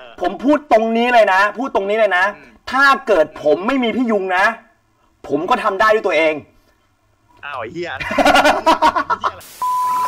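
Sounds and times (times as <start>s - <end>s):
static hiss: 7.3s - 10.0s
man laughing loudly: 8.0s - 9.5s
steady beep tone: 9.6s - 10.0s.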